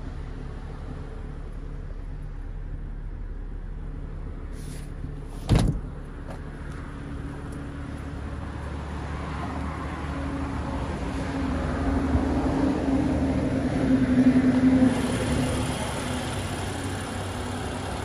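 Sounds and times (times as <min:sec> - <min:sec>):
car engine idling: 0:00.0 - 0:09.0, 0:14.9 - 0:18.0.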